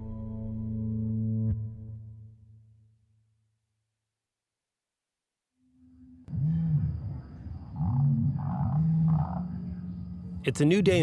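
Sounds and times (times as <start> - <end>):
deep animal-like calls: 5.8 - 10.5.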